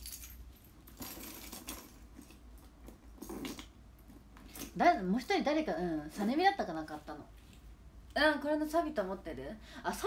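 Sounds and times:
keys clinking and jingling: 0:00.0 - 0:02.4.

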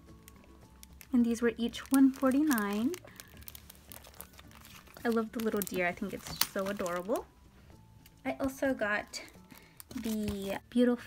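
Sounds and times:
plastic packaging crinkling: 0:00.0 - 0:07.3, 0:09.1 - 0:10.6.

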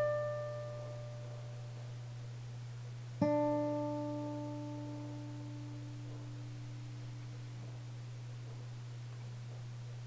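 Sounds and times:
acoustic guitar notes ringing: 0:00.0 - 0:02.2, 0:03.2 - 0:08.6
steady low hum: 0:00.0 - 0:10.0.

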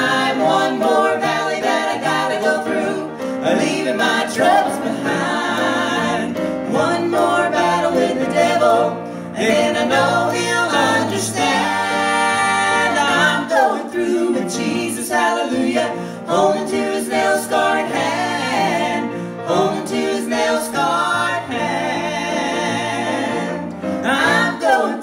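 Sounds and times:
gospel trio singing in harmony: 0:00.0 - 0:25.0.

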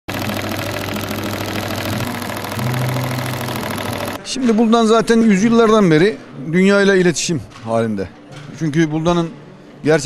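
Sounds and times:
embroidery machine stitching: 0:00.0 - 0:04.2
steady motor hum: 0:00.0 - 0:04.2.

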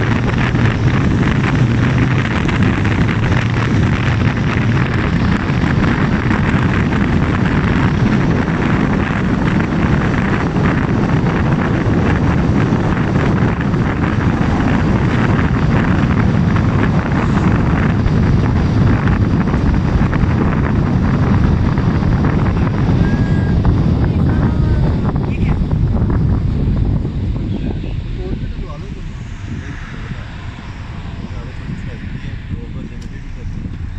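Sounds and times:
car road and wind noise: 0:00.0 - 0:33.9.

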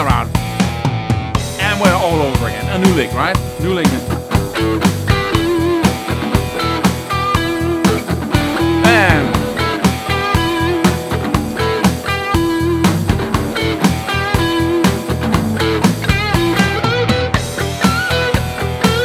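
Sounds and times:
drums and bass backing track: 0:00.0 - 0:19.0
electric lead guitar lick: 0:00.0 - 0:19.0.

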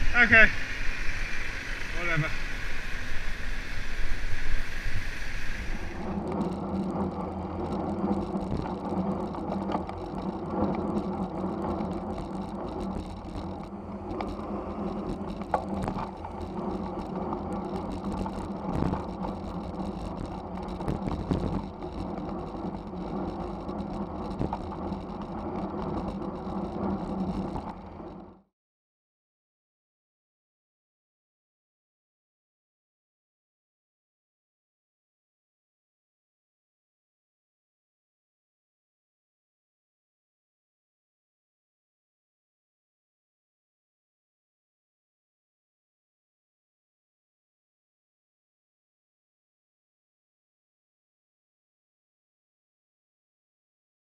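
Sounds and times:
steady low hum: 0:00.0 - 0:28.4
road and wind noise: 0:00.0 - 0:28.5.

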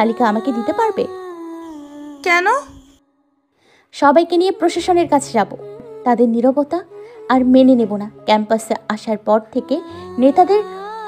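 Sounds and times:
woman humming: 0:00.0 - 0:03.1, 0:04.4 - 0:11.0.

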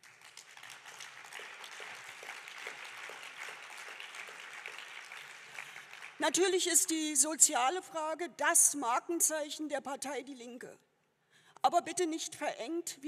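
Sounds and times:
audience applauding: 0:00.0 - 0:06.4.

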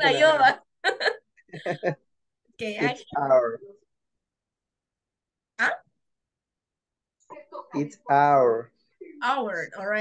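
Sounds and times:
woman speaking: 0:00.0 - 0:00.6, 0:02.6 - 0:03.1
woman laughing: 0:00.8 - 0:02.0.

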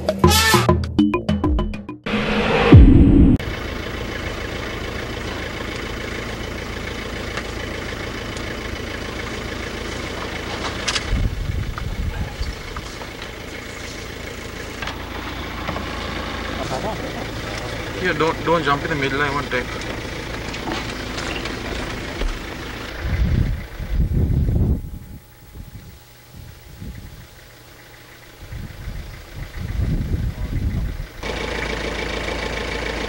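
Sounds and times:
loud sound falling in pitch: 0:02.0 - 0:03.4
vehicle engine idling: 0:03.4 - 0:33.0.

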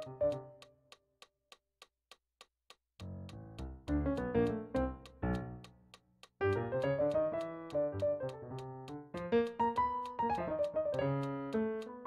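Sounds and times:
held keyboard notes: 0:00.0 - 0:00.7, 0:03.0 - 0:12.0
sharp evenly spaced click: 0:00.0 - 0:12.0.

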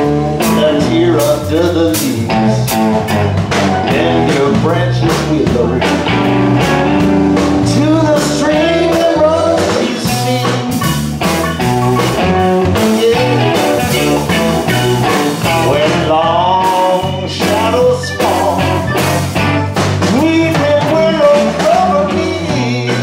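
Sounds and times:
live blues band: 0:00.0 - 0:23.0.

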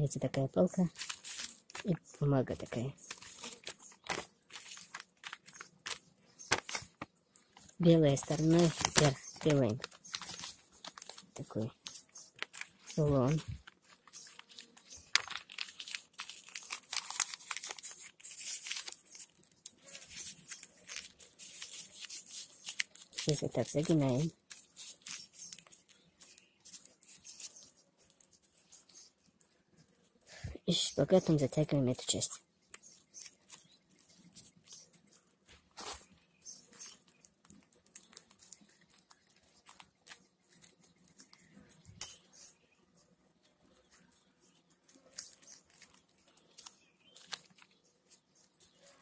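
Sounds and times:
paper rustling and crinkling: 0:00.3 - 0:29.6, 0:32.7 - 0:42.6, 0:43.8 - 0:49.0.

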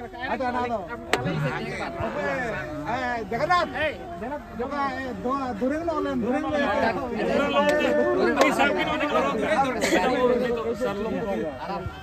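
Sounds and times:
men talking at once: 0:00.0 - 0:12.0.

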